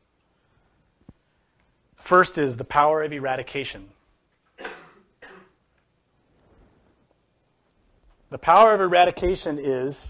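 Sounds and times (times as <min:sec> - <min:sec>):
person coughing: 0:04.6 - 0:05.6.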